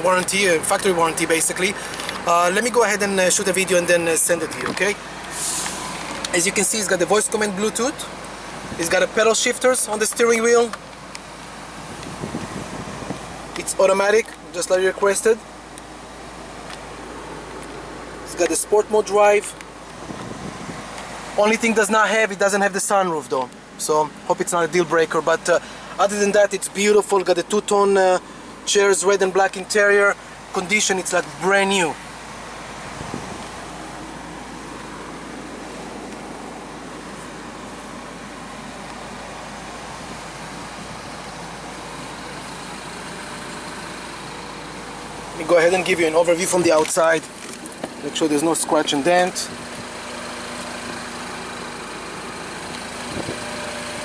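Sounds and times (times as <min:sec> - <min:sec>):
road traffic noise: 0:00.0 - 0:54.0.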